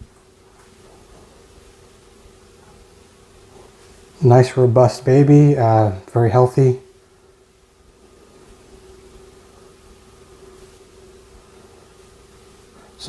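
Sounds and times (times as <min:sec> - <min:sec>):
thin steady hum: 0:00.0 - 0:13.0.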